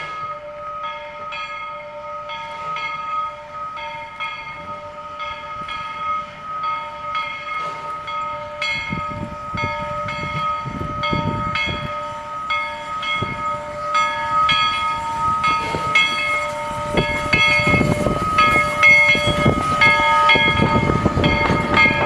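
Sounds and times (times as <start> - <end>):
steam locomotive chuffing: 0.0 - 22.0.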